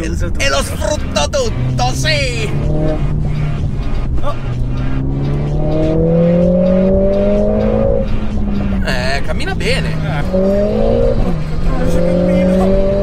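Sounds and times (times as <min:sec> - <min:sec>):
car engine accelerating hard: 0:00.0 - 0:13.0.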